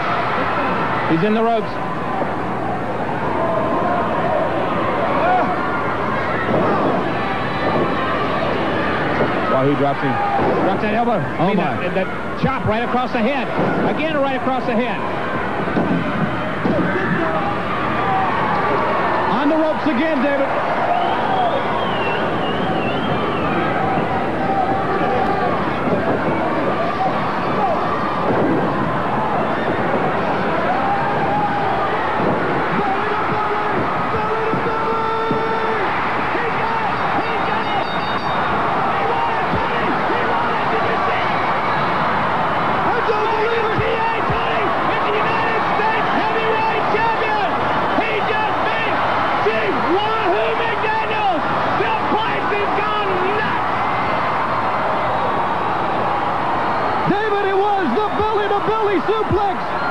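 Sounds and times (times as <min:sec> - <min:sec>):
crowd cheering and roaring: 0:00.0 - 0:59.9.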